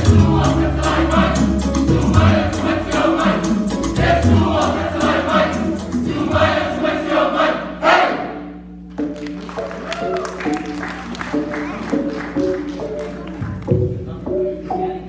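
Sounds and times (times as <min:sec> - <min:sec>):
low bass accompaniment: 0:00.0 - 0:07.4
choir of children and adults singing: 0:00.0 - 0:08.6.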